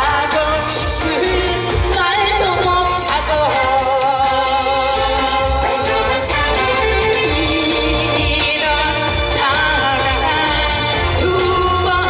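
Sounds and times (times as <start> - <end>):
woman singing into microphone: 0.0 - 6.3, 7.0 - 12.0
backing track with bass beat: 0.0 - 12.0.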